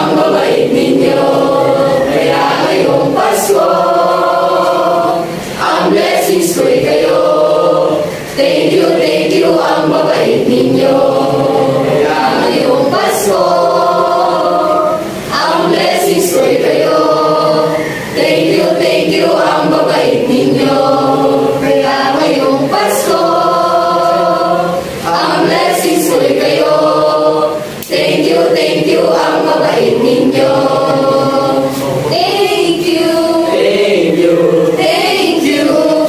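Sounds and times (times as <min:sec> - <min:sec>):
choir singing: 0:00.0 - 0:36.0.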